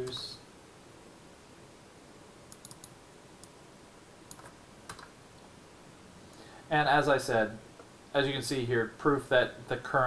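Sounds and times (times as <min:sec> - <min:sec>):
faint room noise: 0:00.0 - 0:10.0
computer mouse and keyboard clicks: 0:02.5 - 0:02.9, 0:04.3 - 0:05.1.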